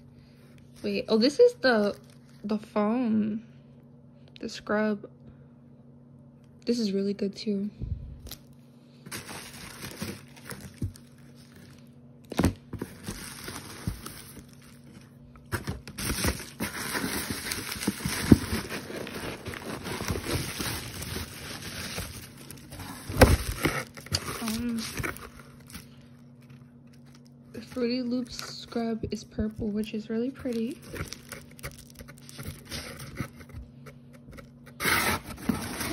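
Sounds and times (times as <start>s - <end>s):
bubble wrap and paper crinkling: 0.5s - 2.8s, 8.3s - 35.9s.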